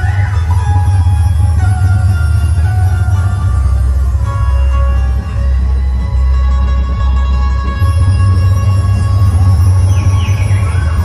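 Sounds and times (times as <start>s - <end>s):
whistle-like glides: 8.0s - 11.0s.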